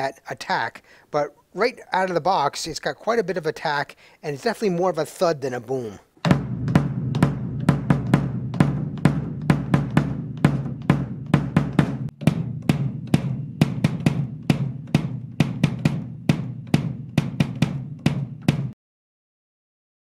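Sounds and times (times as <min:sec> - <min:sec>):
bass drum kicks: 0:06.2 - 0:18.8.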